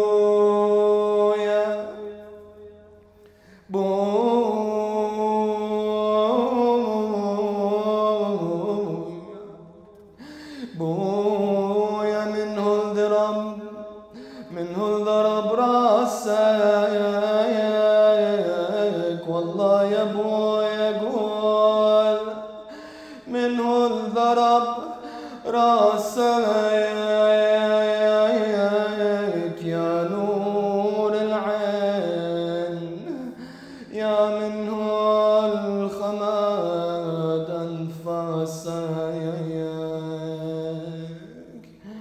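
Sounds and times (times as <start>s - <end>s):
man chanting a lament: 0.0s - 2.6s, 3.6s - 9.6s, 10.4s - 42.0s.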